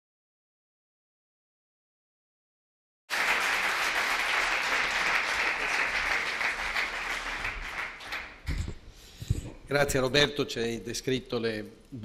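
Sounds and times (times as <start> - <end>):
audience applauding: 3.1 - 8.6.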